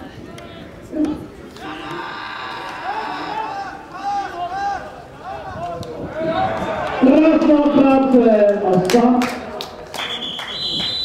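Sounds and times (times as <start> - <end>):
referee's whistle blast: 10.0 - 11.0.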